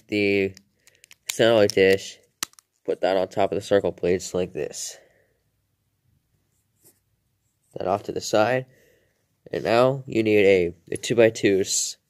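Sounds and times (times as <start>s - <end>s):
man talking: 0.0s - 0.6s, 1.3s - 5.0s, 7.7s - 8.7s, 9.5s - 12.0s.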